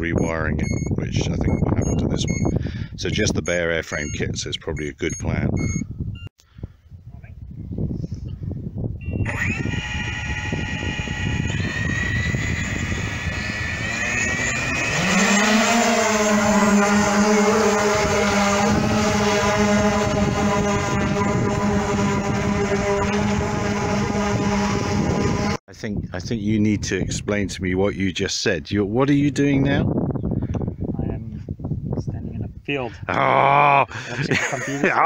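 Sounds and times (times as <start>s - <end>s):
deep propeller hum rising: 7.4s - 25.6s
drone motors whining: 9.0s - 25.6s.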